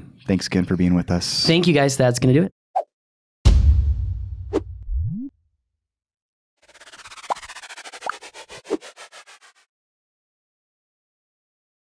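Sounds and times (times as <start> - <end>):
short rising chirps: 6.6 - 8.4
scratchy stutter: 6.6 - 9.7.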